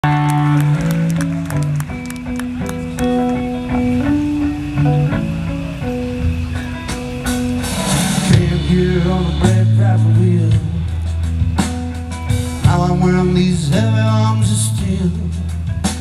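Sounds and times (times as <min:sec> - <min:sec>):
bass guitar: 0:00.0 - 0:16.0
drum kit: 0:00.0 - 0:16.0
electric guitar: 0:00.0 - 0:16.0
cymbals ticking: 0:00.1 - 0:14.6.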